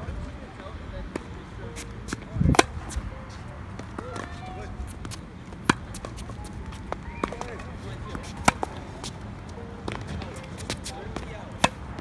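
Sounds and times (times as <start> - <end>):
tennis ball hit by racket: 1.1 - 3.0, 3.7 - 9.2, 9.8 - 12.0
faint shoe squeaks: 1.6 - 11.3.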